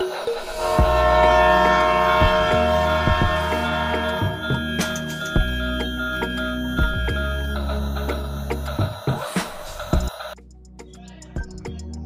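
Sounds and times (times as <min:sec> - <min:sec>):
background music: 0:00.0 - 0:12.0
train horn chord: 0:00.4 - 0:07.1.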